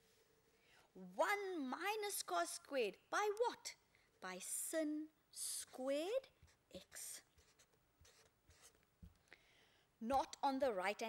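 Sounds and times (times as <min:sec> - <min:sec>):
marker pen scratching on paper: 0:05.8 - 0:08.9.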